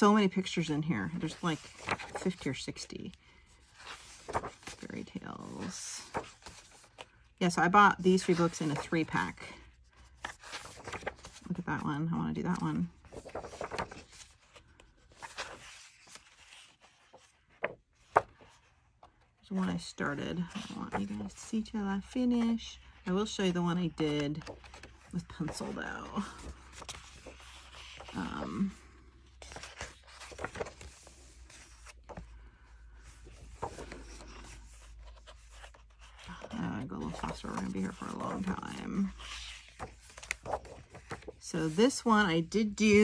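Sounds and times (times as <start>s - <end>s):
book pages rustling: 0.8s - 11.8s, 12.4s - 43.0s.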